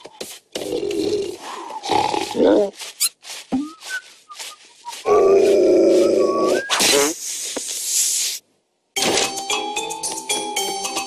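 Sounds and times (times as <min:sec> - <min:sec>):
hissing noise: 0:06.4 - 0:08.5.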